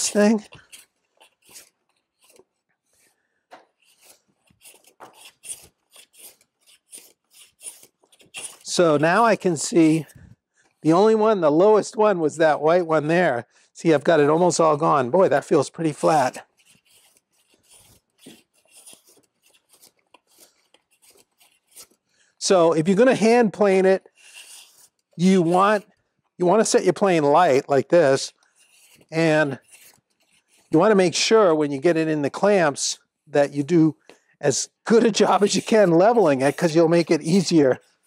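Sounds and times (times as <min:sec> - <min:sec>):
hand plane cutting wood: 0:00.0 - 0:02.5, 0:03.8 - 0:10.1, 0:23.2 - 0:25.9, 0:28.6 - 0:30.9, 0:34.9 - 0:37.4
hand plane rasping on wood: 0:24.2 - 0:25.9, 0:35.0 - 0:36.8.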